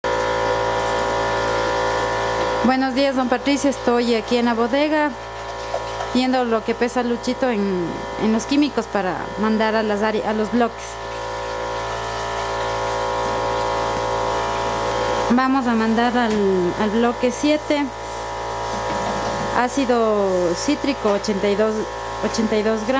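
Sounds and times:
steady machine hum: 0.0 - 22.9.

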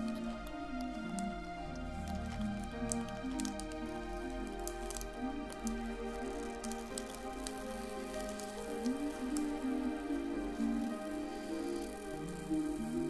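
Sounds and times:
faint crackling clicks: 0.0 - 13.0
slow soft piano music: 0.0 - 13.0.

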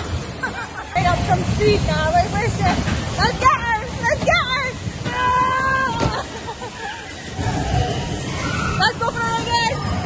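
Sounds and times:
bumper cars rumbling: 0.0 - 10.0.

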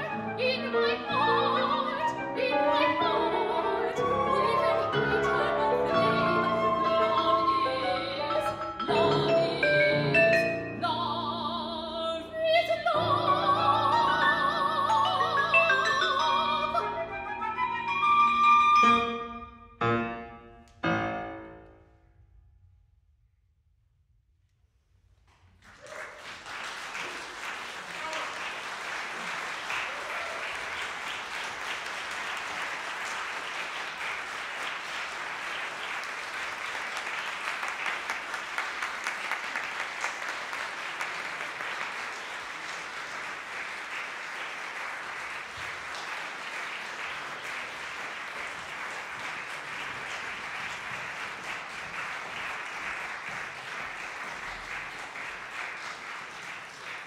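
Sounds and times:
audience applauding: 25.4 - 57.0.

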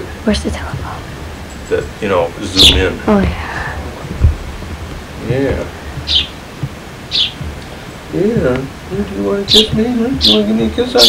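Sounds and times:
sparrow chirping: 0.9 - 3.2, 5.0 - 11.0.

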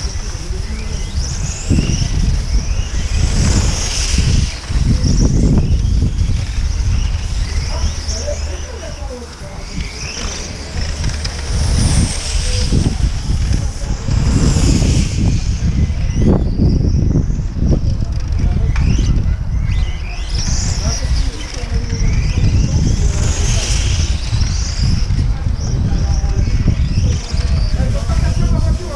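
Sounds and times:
rc cars high-pitched whine: 0.0 - 28.9.

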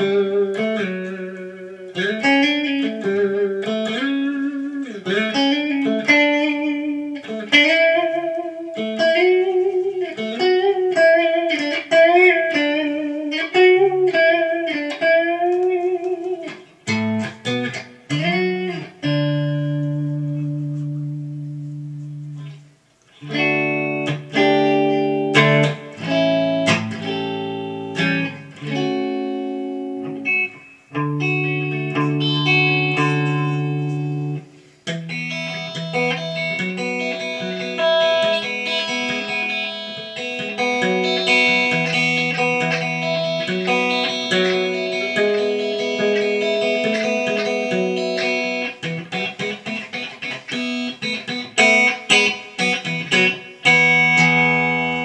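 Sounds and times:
clean electric guitar: 0.0 - 55.0.

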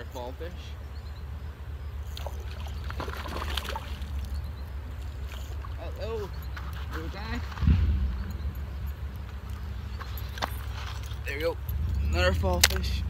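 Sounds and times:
river water splashing: 0.8 - 13.0
steady low rumble: 4.0 - 13.0.

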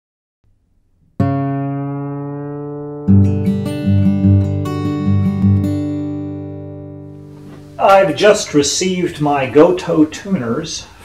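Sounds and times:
guitar music: 0.9 - 10.0.

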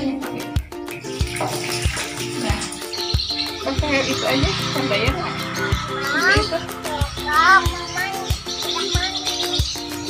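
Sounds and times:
background music with beat: 0.0 - 10.0
water splashing over cat: 1.0 - 3.0.

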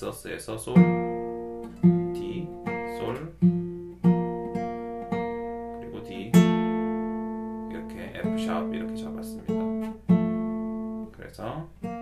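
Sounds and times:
fingerpicked acoustic guitar: 0.4 - 12.0.

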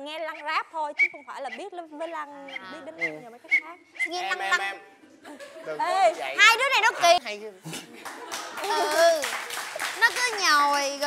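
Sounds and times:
voices speaking: 0.0 - 9.2
quick run of claps: 7.7 - 11.0.

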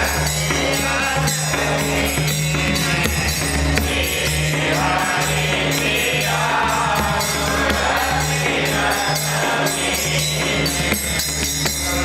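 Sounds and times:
group of men singing: 0.0 - 12.0
hand cymbals jingling: 0.0 - 12.0
hand-played drum: 0.0 - 12.0.

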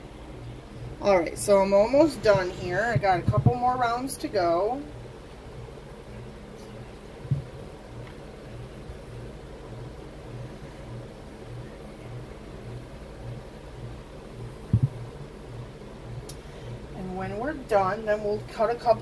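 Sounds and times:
pulsing mechanical hum: 0.0 - 19.0.

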